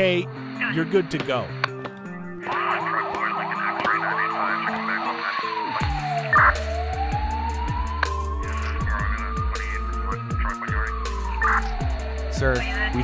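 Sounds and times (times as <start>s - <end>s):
electronic music with deep bass: 0.0s - 13.0s
emergency siren yelping and wailing: 2.0s - 13.0s.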